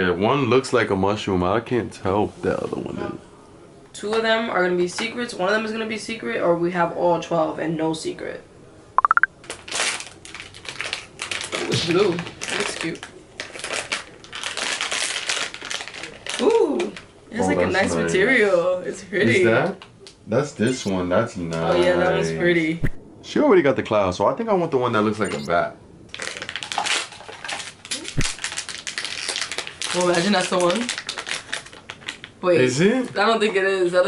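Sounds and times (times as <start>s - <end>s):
plastic wrapper crinkling: 9.4s - 17.0s, 26.1s - 32.4s.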